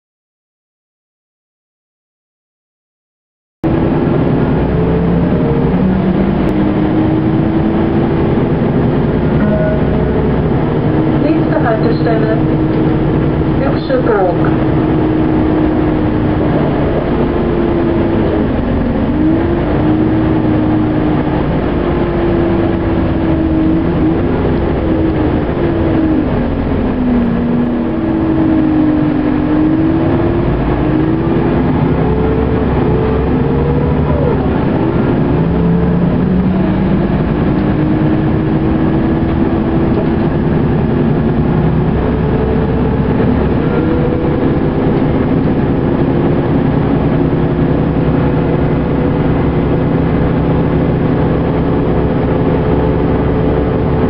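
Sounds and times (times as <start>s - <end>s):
vehicle engine and road rumble: 3.6s - 54.0s.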